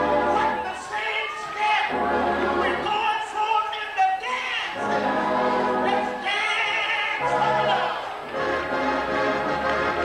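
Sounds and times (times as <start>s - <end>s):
choir singing: 1.9s - 2.9s, 4.8s - 6.2s.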